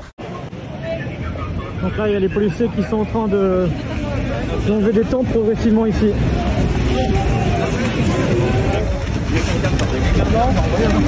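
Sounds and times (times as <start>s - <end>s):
distant voices: 0.2s - 11.0s.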